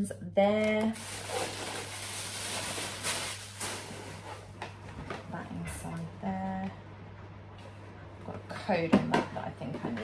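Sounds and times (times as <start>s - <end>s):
steady low hum: 0.0s - 10.0s
paper and cardboard rustling: 0.9s - 4.5s.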